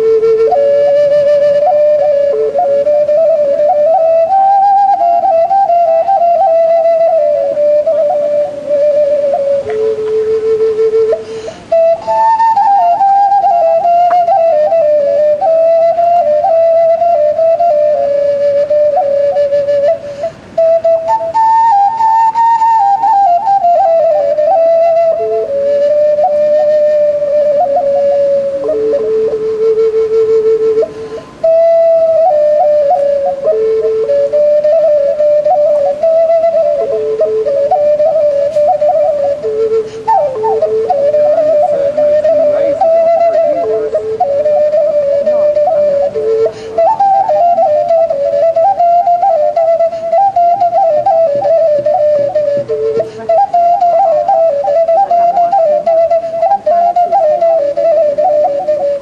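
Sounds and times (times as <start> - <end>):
horn flute slow melody: 0.0 - 59.0.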